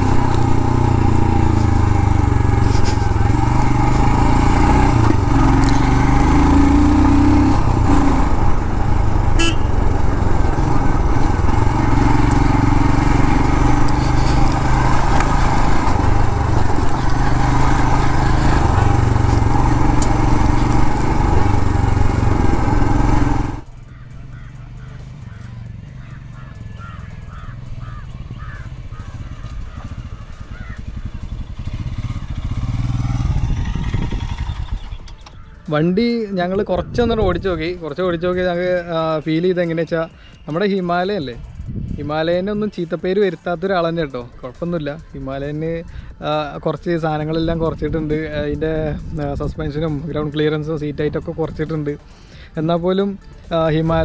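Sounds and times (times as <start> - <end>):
motorcycle engine running: 0.0 - 35.7
wind noise: 33.2 - 35.0, 41.7 - 42.1.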